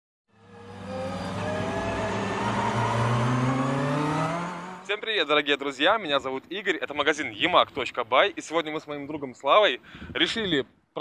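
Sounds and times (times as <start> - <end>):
engine-like drone rising in pitch: 0.3 - 5.2.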